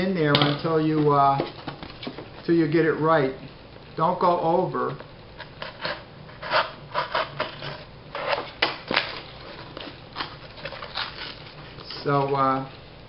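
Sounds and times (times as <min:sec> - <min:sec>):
cardboard scraping against pipe: 0:05.4 - 0:11.9.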